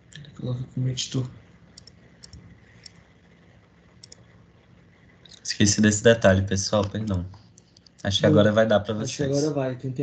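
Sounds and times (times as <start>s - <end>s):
computer mouse clicks: 1.7s - 3.1s, 4.0s - 4.3s, 6.1s - 8.2s.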